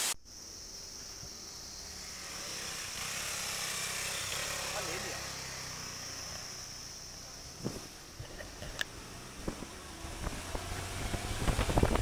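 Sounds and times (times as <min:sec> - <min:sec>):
vehicle engine and road noise: 0:01.4 - 0:12.0.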